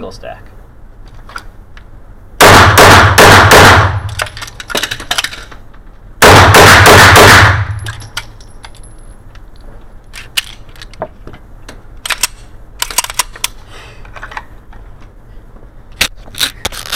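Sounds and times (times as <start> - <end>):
pistol shots ringing indoors: 2.4 - 4.2, 6.2 - 7.9.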